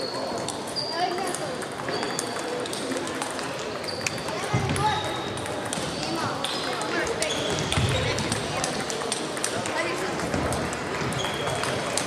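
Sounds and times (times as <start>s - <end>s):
table tennis balls clicking: 0.1s - 12.0s.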